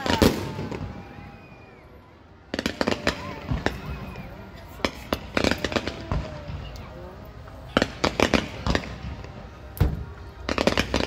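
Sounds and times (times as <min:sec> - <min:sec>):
fireworks bangs and crackling pops: 0:00.0 - 0:01.8, 0:02.4 - 0:11.0.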